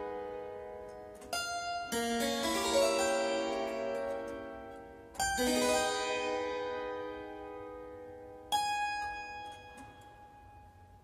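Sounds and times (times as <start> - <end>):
harpsichord chord ringing: 0.0 - 10.9.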